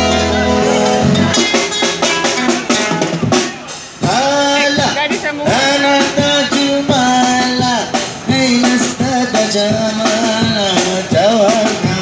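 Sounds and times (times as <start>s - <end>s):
drum beat: 0.0s - 12.0s
guitar: 0.0s - 12.0s
man singing: 0.0s - 12.0s.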